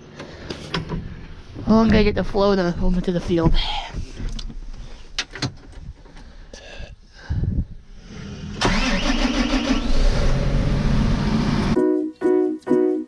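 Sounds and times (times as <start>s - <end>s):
diesel engine starting and running: 0.0s - 4.5s, 7.8s - 11.8s.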